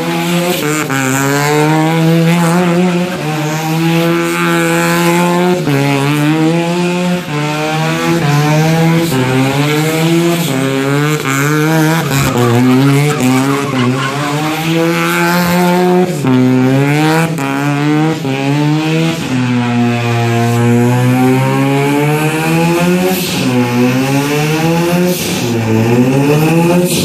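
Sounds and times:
rotary engine revving: 0.0s - 27.0s
tyres squealing: 11.1s - 15.4s.

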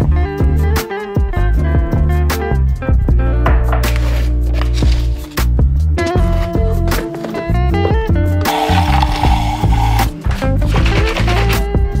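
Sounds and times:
instrumental music with steady beat: 0.0s - 12.0s.

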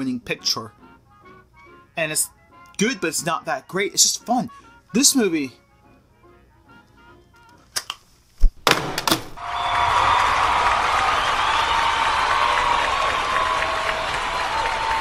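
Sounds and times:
sharp knocks: 8.4s - 9.4s
audience applauding: 9.4s - 15.0s.

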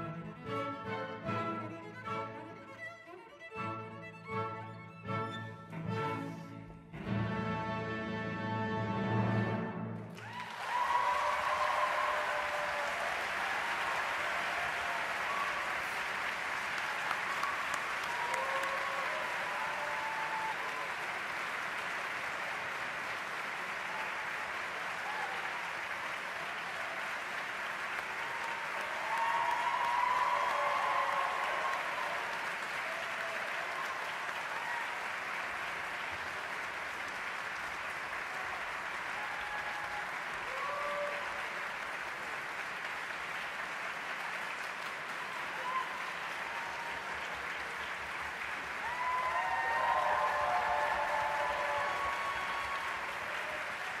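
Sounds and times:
audience applauding: 10.0s - 54.0s
crowd cheering and shouting: 10.2s - 16.0s, 16.8s - 21.3s, 28.1s - 35.1s, 38.3s - 41.6s, 45.2s - 47.7s, 48.8s - 54.0s.

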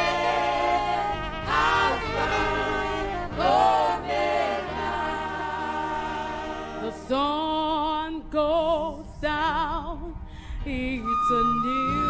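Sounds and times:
women singing gospel chorus: 0.0s - 9.0s.

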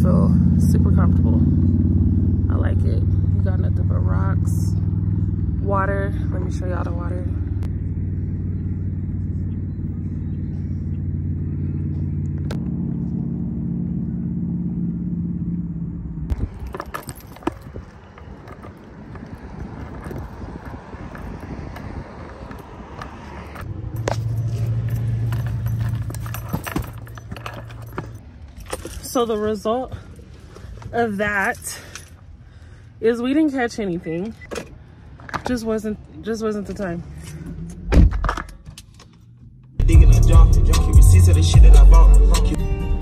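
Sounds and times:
vehicle engine humming: 0.0s - 43.0s
sharp clinks: 23.6s - 29.1s.

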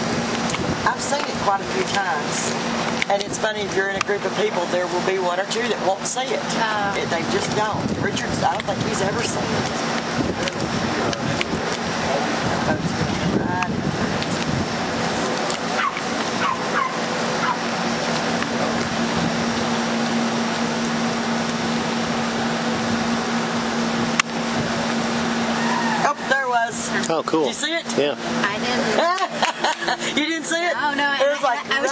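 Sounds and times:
motor humming: 0.0s - 31.9s.

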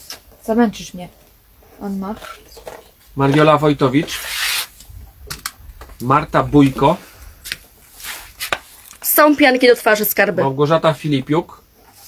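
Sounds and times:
rubbing rustling noise: 1.8s - 6.0s, 6.6s - 9.2s.

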